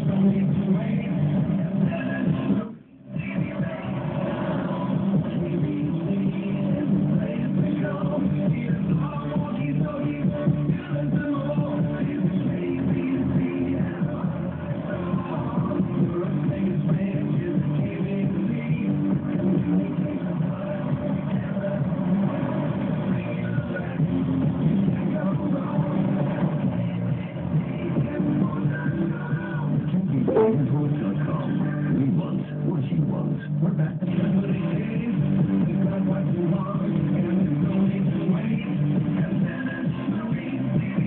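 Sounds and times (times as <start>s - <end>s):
radio jingle through speaker: 30.3s - 31.0s.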